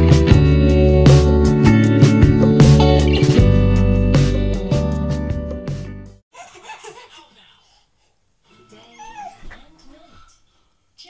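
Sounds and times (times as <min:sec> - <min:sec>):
baby squealing cries: 0:08.7 - 0:09.5.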